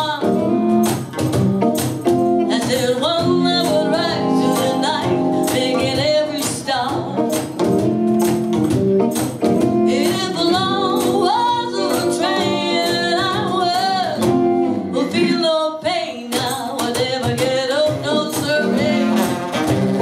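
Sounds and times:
woman singing: 0.0s - 0.9s, 2.4s - 7.5s, 9.6s - 19.6s
drums: 0.0s - 20.0s
electric guitar: 0.0s - 20.0s
strummed acoustic guitar: 16.8s - 20.0s.

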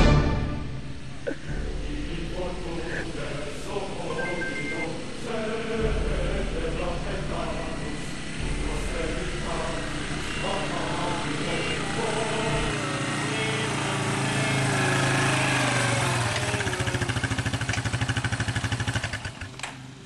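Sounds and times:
lawn mower engine running: 0.0s - 20.0s.

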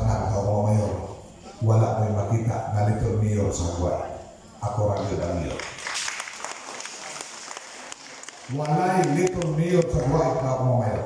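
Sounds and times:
audience applause: 5.5s - 10.2s.

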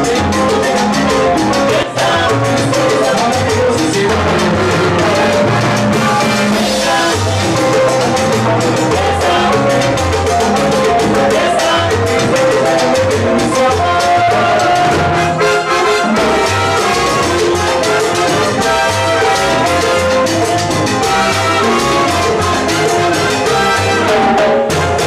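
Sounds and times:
bass line: 0.0s - 25.0s
latin percussion: 0.0s - 25.0s
brass lines: 11.3s - 25.0s.

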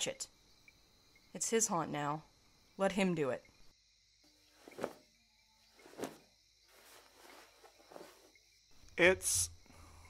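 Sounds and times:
crickets chirping: 0.0s - 10.0s
soft rustles: 4.5s - 5.0s, 5.7s - 8.4s.

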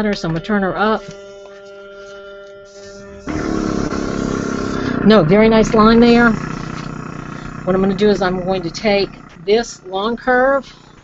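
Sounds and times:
steady low airflow hum: 0.0s - 11.0s.

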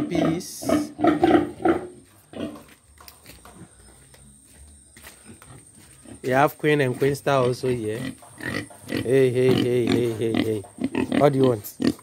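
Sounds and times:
pig grunting: 0.0s - 2.7s, 7.3s - 12.0s.

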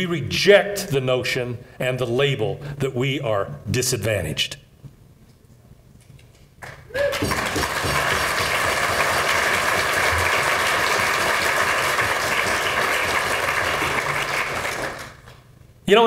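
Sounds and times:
audience applauding: 6.6s - 15.5s.

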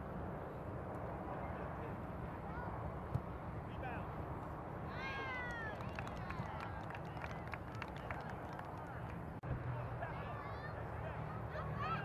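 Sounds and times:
distant shouting players and spectators: 0.5s - 12.0s.

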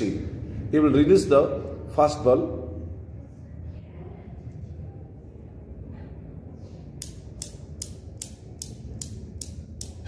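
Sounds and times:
newton's cradle balls clicking: 7.0s - 10.0s.

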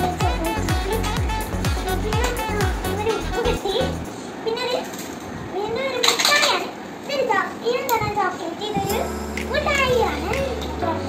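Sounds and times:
steady low hum: 0.0s - 4.4s
girl talking: 0.0s - 11.0s.

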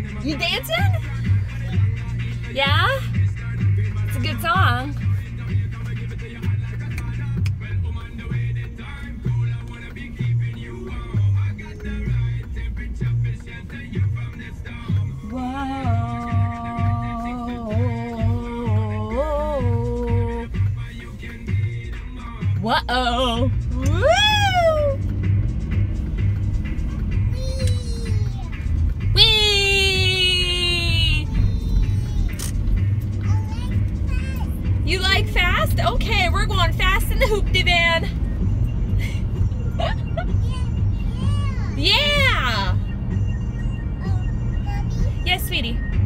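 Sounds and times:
pop music from car radio: 0.0s - 46.0s.

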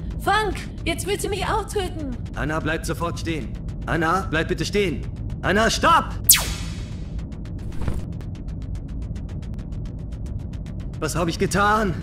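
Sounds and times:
background music: 0.0s - 12.0s
blaster zap sweeping down: 6.3s - 7.0s.

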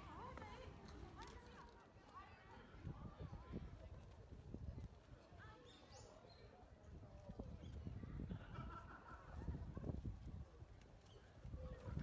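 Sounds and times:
wind rumble on microphone: 2.7s - 5.3s, 6.8s - 12.0s.

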